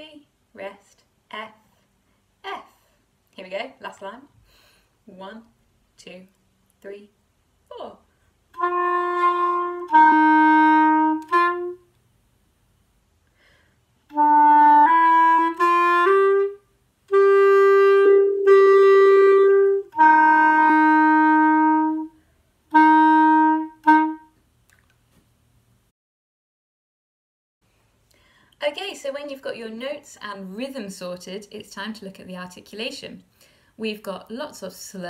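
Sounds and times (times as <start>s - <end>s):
clarinet slow melody: 8.5s - 12.0s, 14.1s - 24.4s.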